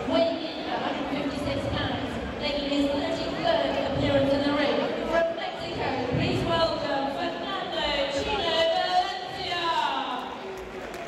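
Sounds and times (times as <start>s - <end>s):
woman announcing over loudspeaker: 0.0s - 10.4s.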